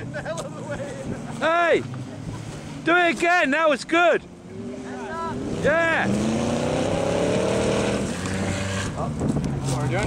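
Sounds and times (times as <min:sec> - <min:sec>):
car engine revving hard: 0:04.5 - 0:09.2.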